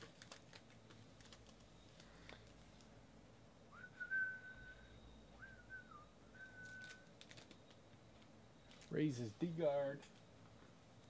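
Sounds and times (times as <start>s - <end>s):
person whistling softly: 3.7s - 7.1s.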